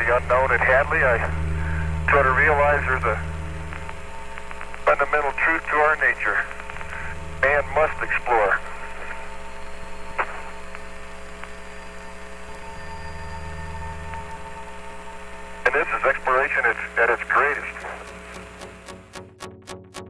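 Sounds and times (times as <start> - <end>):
radio voice: 0.0 - 1.4, 2.1 - 3.2, 4.8 - 9.2, 15.6 - 18.1
radio hum and hiss: 0.0 - 19.2
radio click: 10.2 - 11.6, 16.7 - 19.3.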